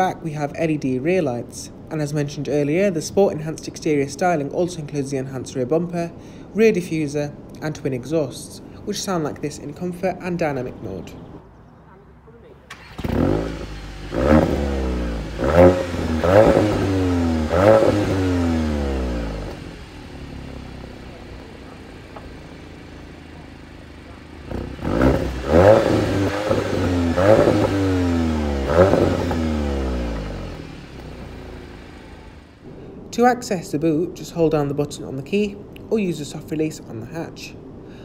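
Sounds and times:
car engine idling: 0:12.5 - 0:38.0
car engine revving: 0:12.7 - 0:32.8.

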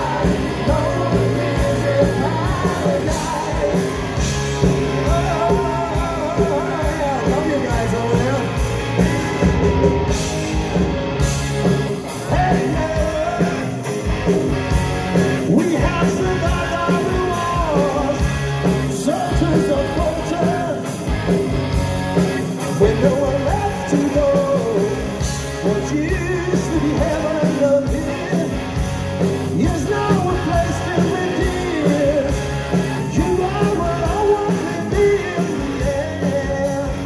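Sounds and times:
man singing: 0:00.0 - 0:08.6, 0:12.1 - 0:13.9, 0:15.4 - 0:20.9, 0:22.6 - 0:28.8, 0:29.5 - 0:37.0
bass guitar: 0:00.0 - 0:37.0
drums: 0:00.0 - 0:37.0
electric guitars: 0:00.0 - 0:37.0.

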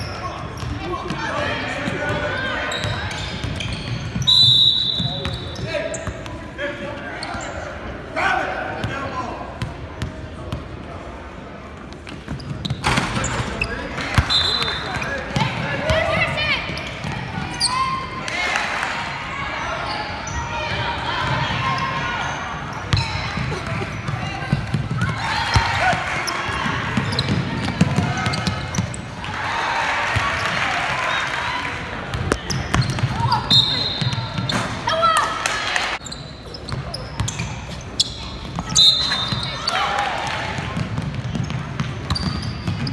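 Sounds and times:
sneaker squeaks: 0:00.0 - 0:07.8, 0:11.9 - 0:18.2, 0:19.5 - 0:29.2, 0:32.1 - 0:35.2, 0:36.0 - 0:40.2, 0:40.8 - 0:42.9
crowd noise: 0:00.0 - 0:42.9
spectators' voices: 0:12.8 - 0:42.0.

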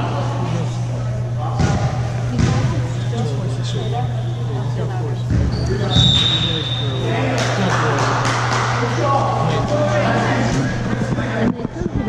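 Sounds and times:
steady low hum: 0:00.0 - 0:12.0
voices chattering: 0:00.0 - 0:12.0.

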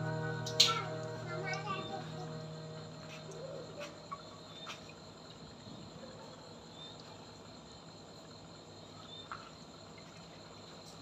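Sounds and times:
faint background hum and hiss: 0:00.0 - 0:11.0.

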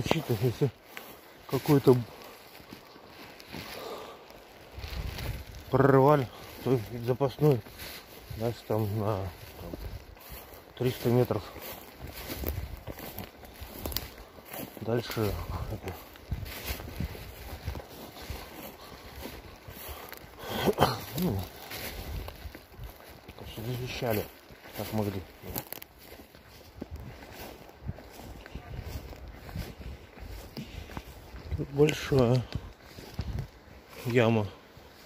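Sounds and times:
footsteps through shrubs and moss: 0:00.0 - 0:35.0
leaves and twigs rustling: 0:00.0 - 0:35.0.

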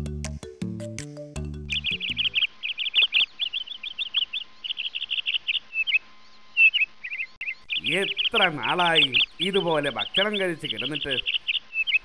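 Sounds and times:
birds chirping: 0:01.6 - 0:12.0.

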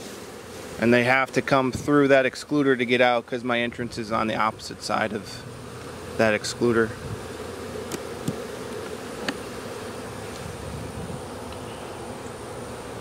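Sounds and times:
bees buzzing: 0:00.0 - 0:13.0.

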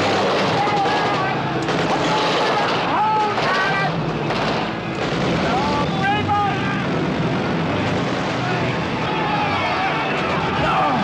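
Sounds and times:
men yelling: 0:00.4 - 0:04.0, 0:08.3 - 0:11.0
propeller aircraft engines droning: 0:03.8 - 0:11.0.

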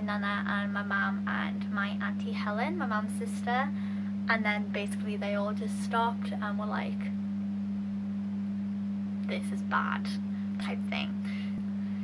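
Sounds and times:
speech: 0:00.0 - 0:07.1, 0:09.3 - 0:11.4
steady low hum: 0:00.0 - 0:12.0.

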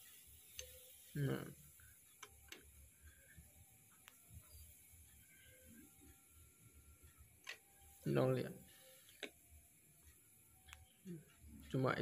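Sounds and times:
faint ticks on a meter: 0:00.0 - 0:12.0.

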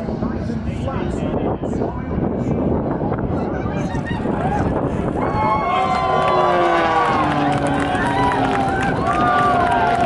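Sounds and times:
distant propeller plane engine droning: 0:00.0 - 0:10.0.

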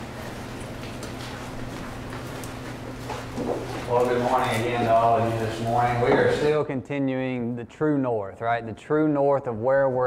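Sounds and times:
low electrical hum: 0:00.0 - 0:10.0
man talking: 0:03.9 - 0:10.0.

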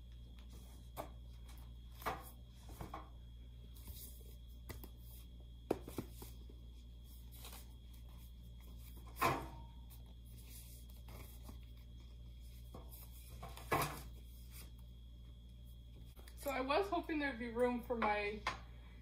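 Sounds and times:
faint low hum: 0:00.0 - 0:19.0
books set down on metal cart: 0:09.1 - 0:09.7, 0:13.4 - 0:14.1.

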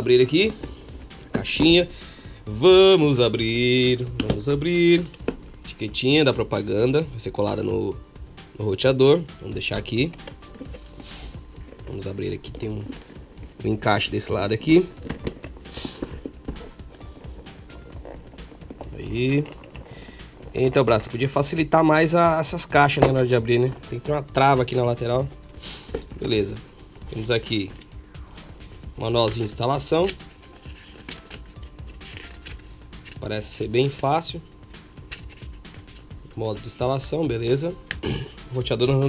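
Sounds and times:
background music: 0:00.0 - 0:39.0
paper pages turning: 0:14.7 - 0:21.2, 0:29.2 - 0:33.4, 0:35.0 - 0:36.1.

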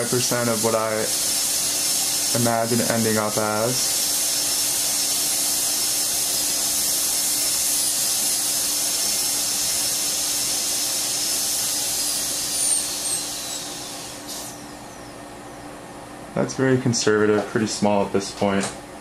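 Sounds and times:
dental drill whining: 0:00.0 - 0:15.2.

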